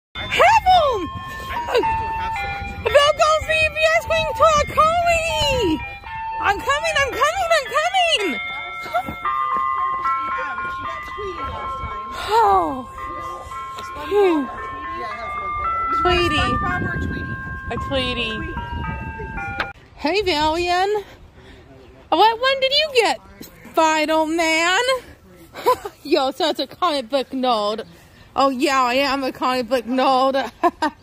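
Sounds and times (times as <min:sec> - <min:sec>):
chime-like melody: 0:00.2 - 0:19.9.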